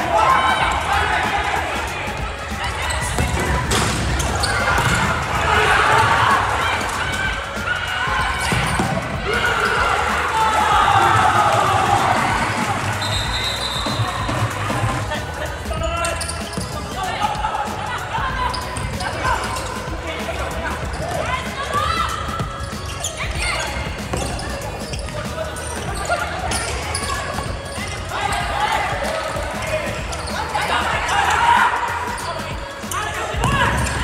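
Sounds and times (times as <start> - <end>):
players calling out: 0.0 - 34.0.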